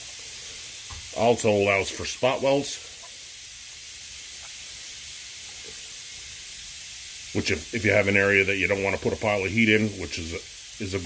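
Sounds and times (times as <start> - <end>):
steady hiss: 0.0 - 11.0.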